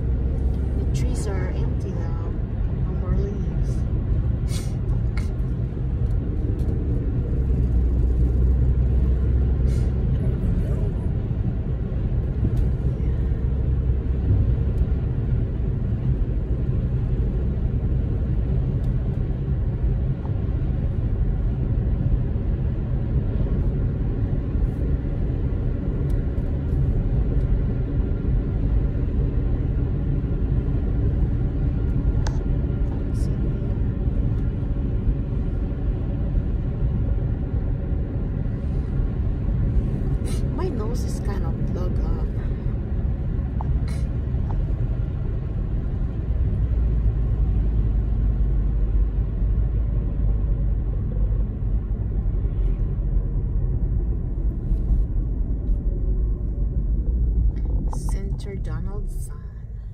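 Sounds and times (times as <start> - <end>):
car cabin road rumble: 0.0 - 59.9.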